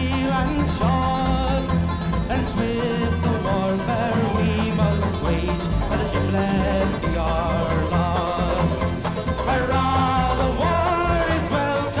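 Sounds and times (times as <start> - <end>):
folk band playing: 0.0 - 12.0.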